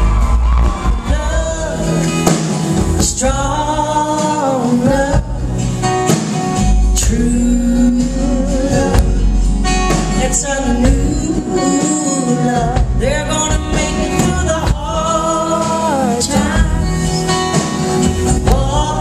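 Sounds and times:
acoustic guitars: 0.0 - 19.0
upright bass: 0.0 - 19.0
woman singing long held notes: 10.1 - 17.3.

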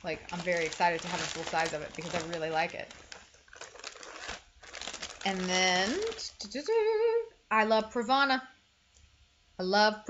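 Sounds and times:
plastic packaging crinkling: 0.0 - 6.7.

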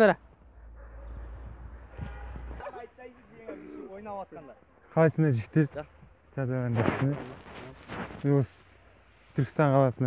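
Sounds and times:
men calling loudly: 2.6 - 7.6.

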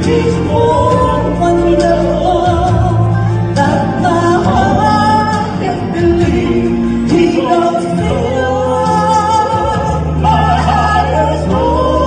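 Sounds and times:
woman singing: 0.0 - 12.0
man singing: 3.8 - 12.0.

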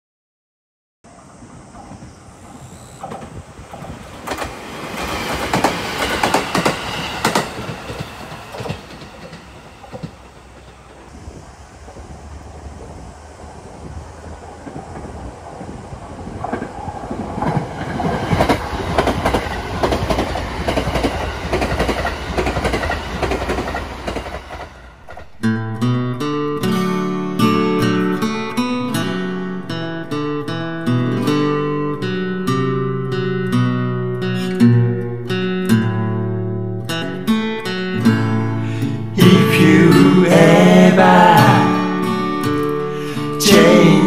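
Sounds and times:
train rumble: 1.1 - 25.5, 37.9 - 44.0
train wheels clattering: 1.7 - 12.2, 14.6 - 25.4.

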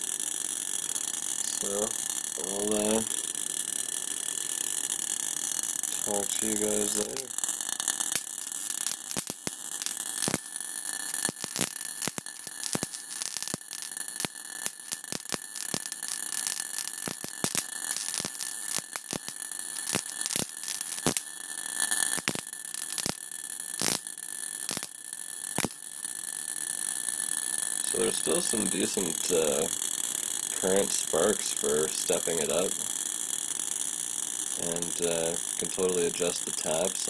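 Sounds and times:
spark gap hiss and buzz: 0.0 - 37.0
sharp spark snaps: 0.4 - 25.9, 26.7 - 37.0.

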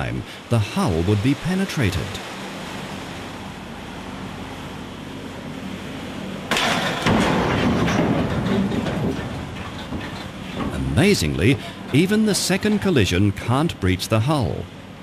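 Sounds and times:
ship rumble: 0.0 - 15.0
loud crash of ship impact: 6.5 - 11.8.

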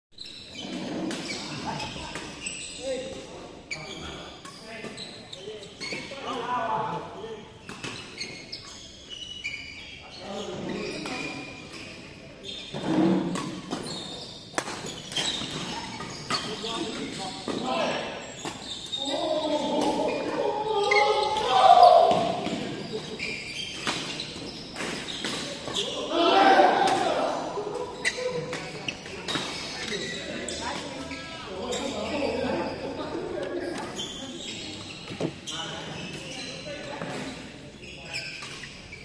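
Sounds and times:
people talking: 19.0 - 23.2.

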